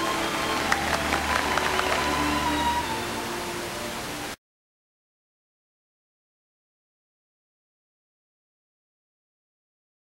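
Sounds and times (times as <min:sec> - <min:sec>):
audience applauding: 0:00.0 - 0:04.0
music: 0:00.0 - 0:04.4.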